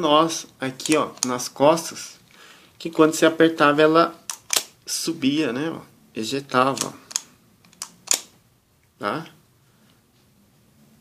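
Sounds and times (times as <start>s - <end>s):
plastic toy clicks: 4.3s - 4.7s.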